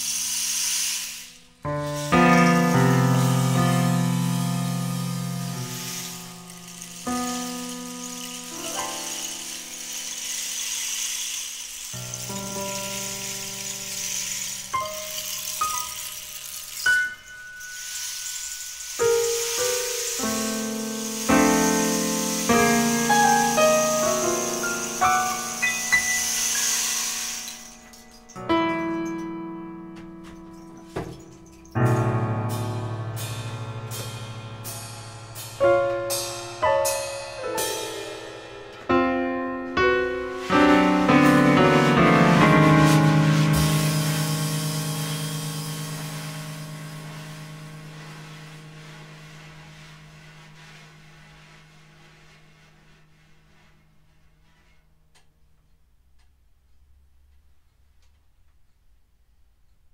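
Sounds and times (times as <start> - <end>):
hissing cymbal wash: 0.0 - 29.3, 30.5 - 54.1
digital piano chords: 0.0 - 50.4
cymbal wash: 31.9 - 50.8.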